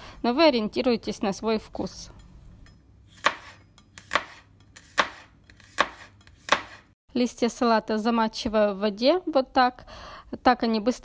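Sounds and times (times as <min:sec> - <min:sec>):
knife chopping on cutting board: 0:03.1 - 0:07.0.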